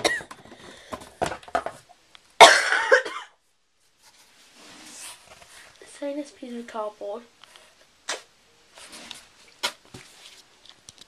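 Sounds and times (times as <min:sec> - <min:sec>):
girl coughing: 0:00.0 - 0:00.3, 0:02.4 - 0:03.4.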